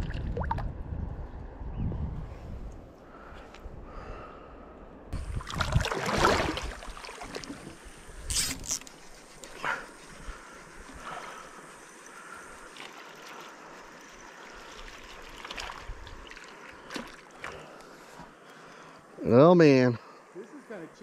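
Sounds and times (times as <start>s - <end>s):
gentle river water: 0.0s - 1.0s, 4.6s - 21.0s
wind on microphone: 0.0s - 4.2s, 5.1s - 7.0s.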